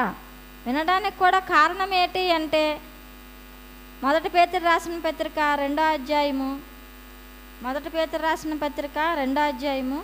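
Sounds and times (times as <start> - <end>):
woman's voice: 0.0 - 2.9, 4.0 - 6.7, 7.6 - 10.0
electrical mains hum: 0.0 - 10.0.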